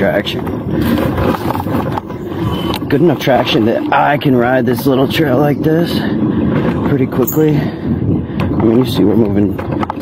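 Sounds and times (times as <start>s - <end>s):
scooter rattling: 0.0s - 10.0s
scooter tyres rumbling on dirt: 0.0s - 10.0s.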